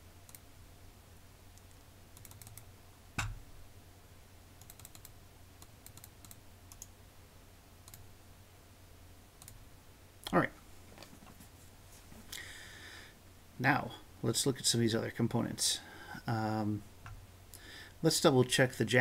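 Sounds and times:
keyboard and mouse clicks: 1.6 - 3.4, 4.6 - 6.9, 9.4 - 9.6.

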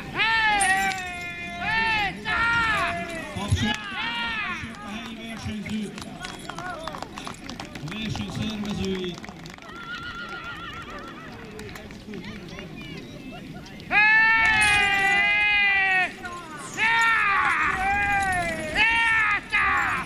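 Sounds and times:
handlers shouting commands: 0.0 - 8.8, 13.8 - 20.0
horse team clatter: 0.0 - 20.0.

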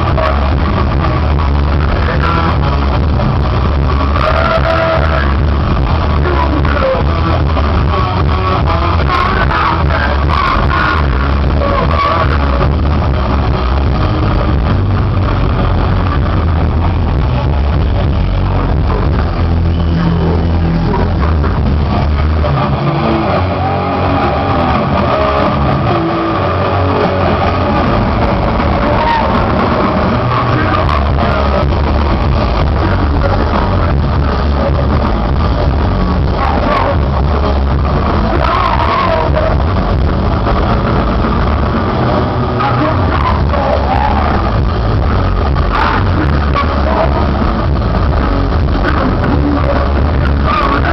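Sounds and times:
muffled live metal band: 0.0 - 50.9.

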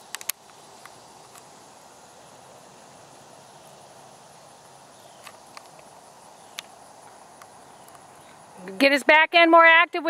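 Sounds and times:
steady faint hiss: 0.0 - 10.0.

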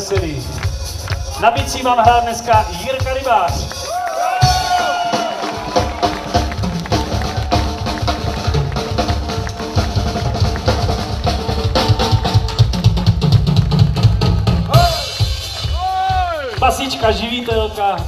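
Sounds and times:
live rock band: 0.0 - 18.0
cymbals: 9.0 - 17.2.

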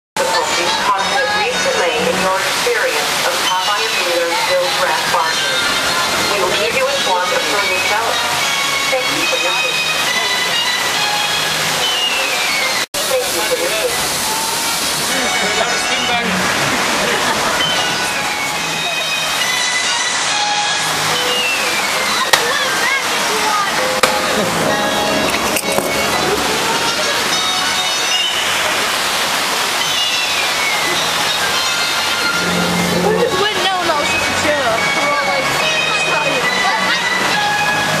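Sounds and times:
whitewater rushing: 0.2 - 38.0
long whistle-like tones: 9.7 - 12.8.

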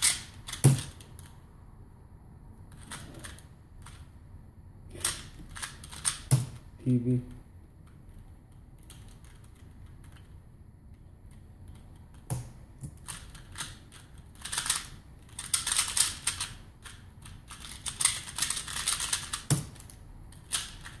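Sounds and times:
fast plastic clicking of puzzle cube: 4.9 - 6.6, 11.3 - 21.0.

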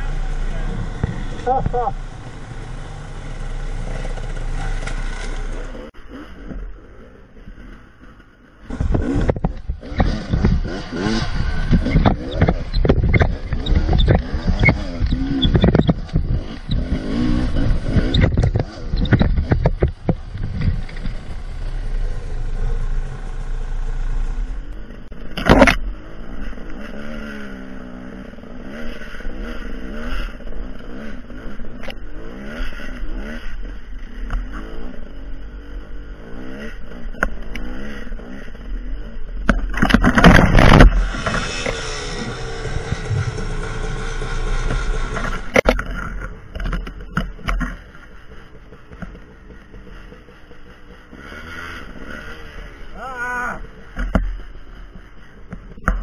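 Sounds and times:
bike knocking and scraping: 0.0 - 6.9, 7.5 - 27.6, 36.3 - 56.0
dirt bike engine revving: 0.0 - 7.2, 8.6 - 56.0.

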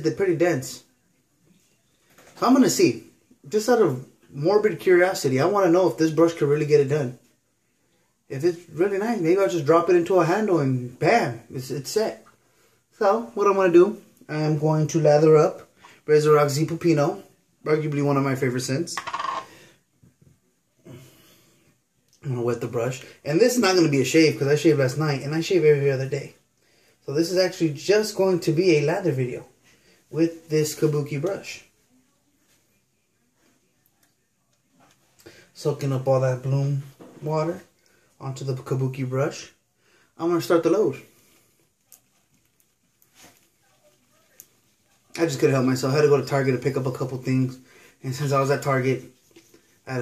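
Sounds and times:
small hard object clattering: 19.0 - 19.5
brush squishing on soap: 41.2 - 45.2.

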